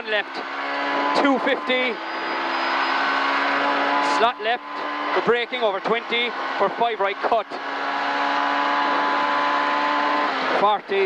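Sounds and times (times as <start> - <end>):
rally car engine at full throttle: 0.0 - 11.0.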